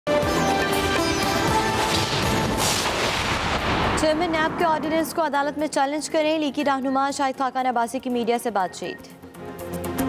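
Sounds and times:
dramatic news theme music: 0.1s - 10.0s.

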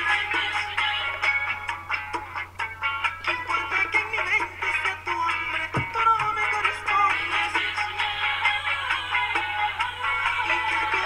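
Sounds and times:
recorded music with steady beat: 0.0s - 11.0s
man singing: 3.2s - 8.0s
low thump: 5.8s - 6.0s.

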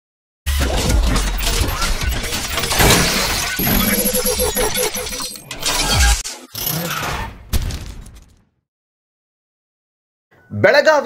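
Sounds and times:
crashing sound effects: 0.5s - 8.4s
rapidly pulsing tone: 0.6s - 6.6s.

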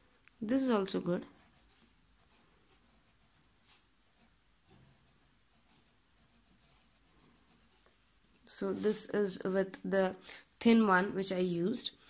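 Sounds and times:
pen nib scratching on paper: 0.6s - 8.1s.

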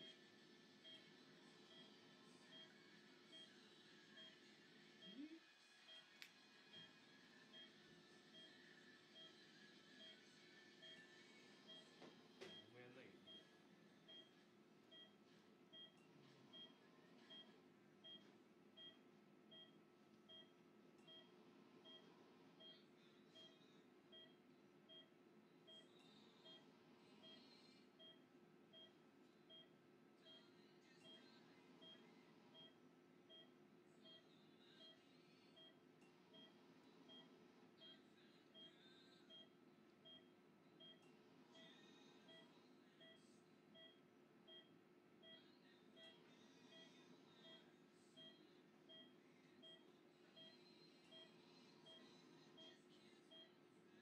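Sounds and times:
low room hum: 0.0s - 54.0s
patient monitor beeping: 0.8s - 3.6s, 9.2s - 26.6s, 27.2s - 35.0s, 35.6s - 45.4s, 46.0s - 53.6s.

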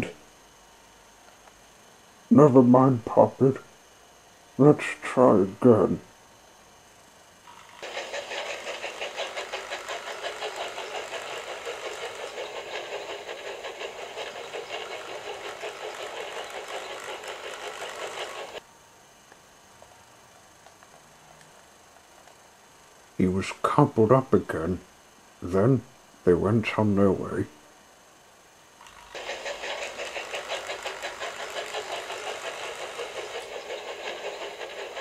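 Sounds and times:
model steam locomotive running: 7.5s - 18.6s, 28.8s - 35.0s.

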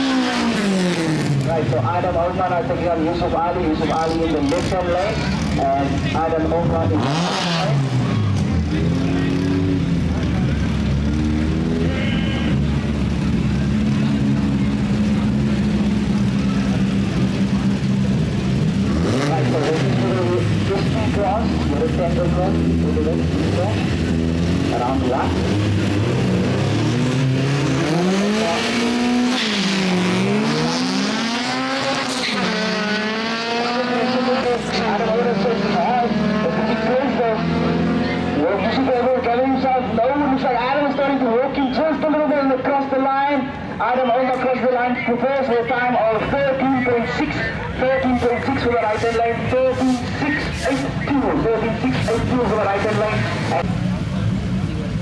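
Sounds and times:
car accelerating away: 0.0s - 1.9s, 3.8s - 41.2s
drag racing engines revving: 0.0s - 55.0s.

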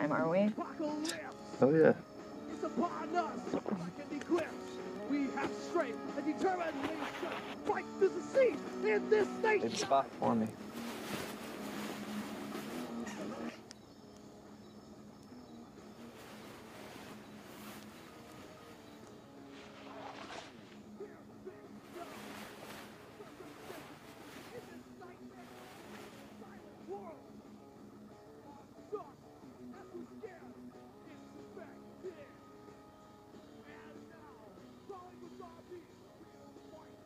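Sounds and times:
sustained low film music tones: 0.0s - 37.0s.

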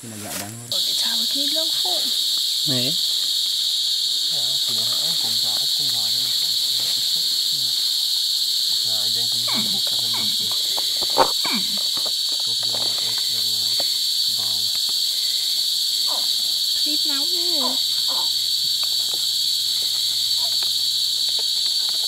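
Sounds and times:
insects buzzing: 0.0s - 22.0s.

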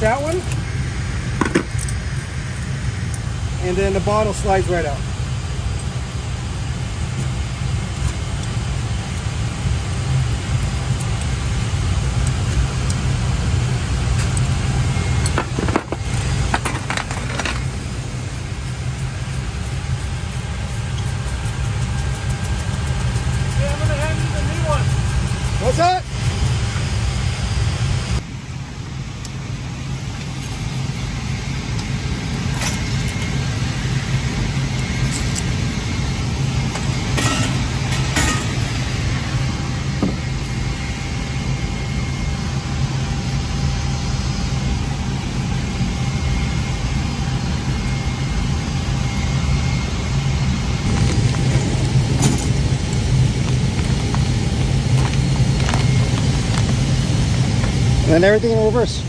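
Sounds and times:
low machinery drone: 0.0s - 59.0s.

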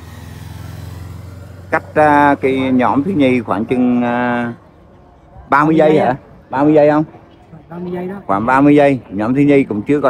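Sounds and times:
motorcycle passing by: 0.0s - 6.2s.

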